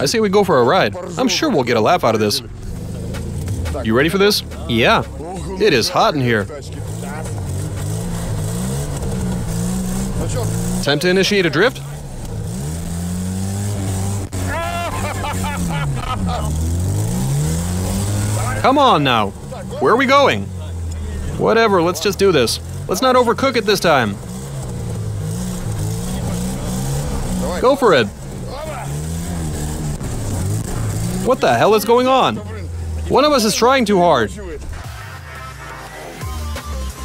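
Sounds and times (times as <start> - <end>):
car engine revving: 0.0 - 37.0.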